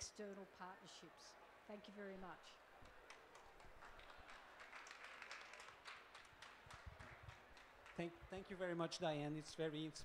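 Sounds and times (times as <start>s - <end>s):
small audience clapping: 2.8s - 8.8s.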